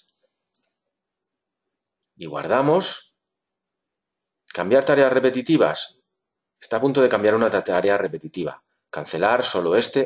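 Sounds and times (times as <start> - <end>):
computer mouse click: 0.0 - 0.9.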